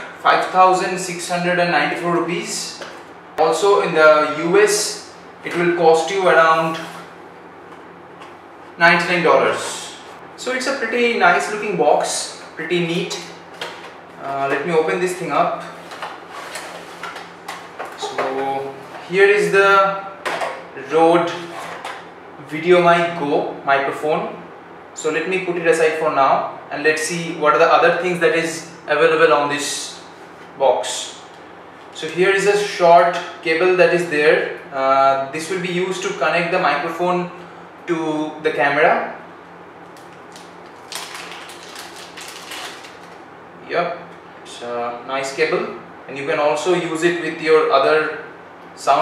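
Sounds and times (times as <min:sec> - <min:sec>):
plastic bag crinkling: 0:40.0 - 0:43.2.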